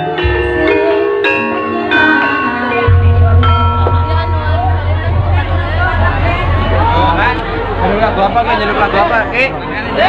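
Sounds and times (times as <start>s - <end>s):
metallophone notes ringing: 0.0s - 9.2s
deep sustained low tone: 2.8s - 8.8s.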